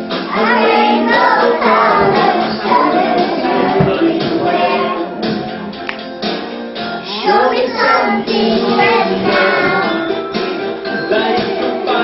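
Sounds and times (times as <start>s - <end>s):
music: 0.0s - 12.0s
children singing: 0.2s - 5.3s, 7.0s - 10.2s, 10.9s - 12.0s.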